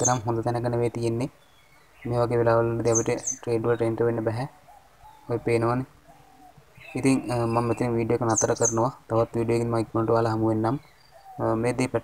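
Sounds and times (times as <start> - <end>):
man's drawn-out voice: 7.0 - 10.8.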